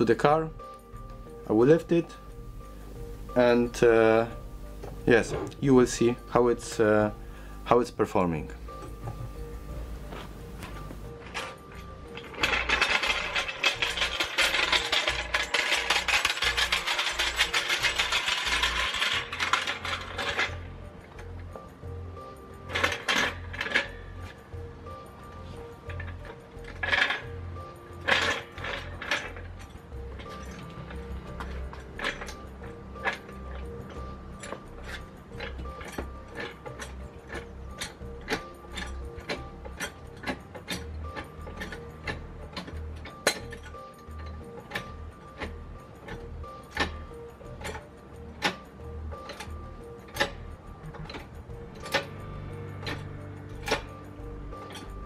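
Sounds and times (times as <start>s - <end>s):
background music: 0.0s - 55.0s
jack handle clicks and clanks: 3.2s - 55.0s
trolley jack rattling over paving: 10.5s - 21.5s, 22.6s - 24.4s, 25.2s - 55.0s.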